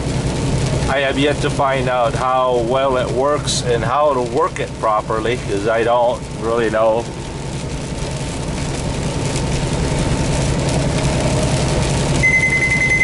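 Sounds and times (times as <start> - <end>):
truck engine drone: 0.0 - 13.0
high electronic beep: 12.2 - 13.0.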